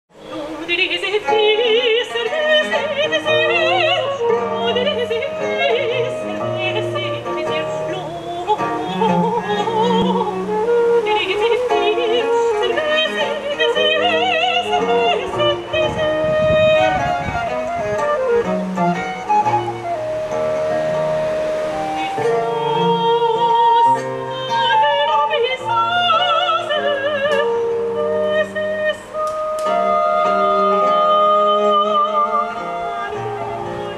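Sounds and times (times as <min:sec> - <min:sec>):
violin lute and strings ensemble: 0:00.1 - 0:33.9
soprano singing with vibrato: 0:00.2 - 0:33.9.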